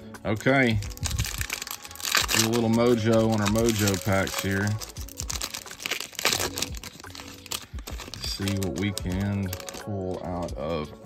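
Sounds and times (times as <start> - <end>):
plastic wrapper crinkling and tearing: 0.4 - 10.5.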